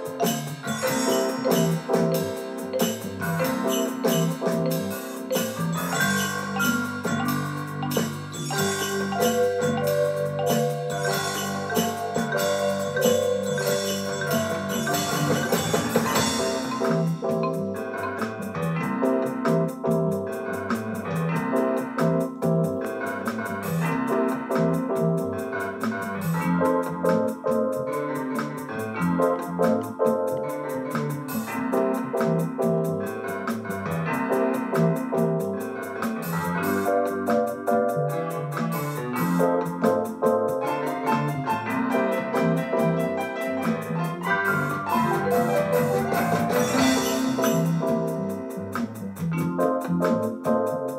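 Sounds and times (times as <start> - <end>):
organ and mallet keyboard voices: 0.0 - 20.8, 39.4 - 48.6
keyboard piano riffs: 0.0 - 50.9
steady ticking beat: 0.0 - 50.9.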